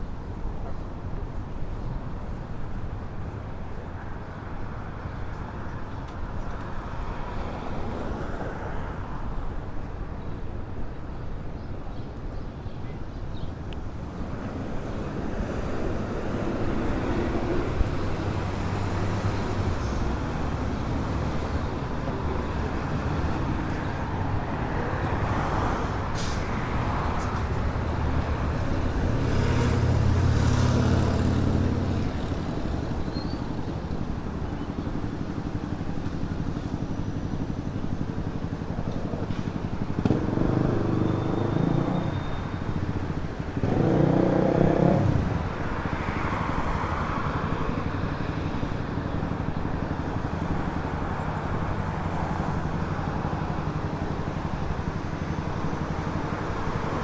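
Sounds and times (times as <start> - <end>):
cars passing: 13.9 - 57.0.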